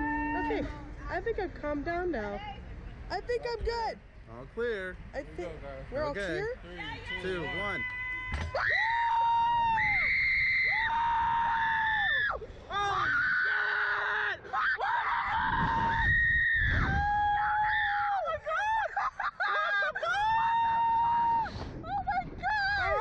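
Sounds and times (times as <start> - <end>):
man and woman screaming: 7.4 - 23.0.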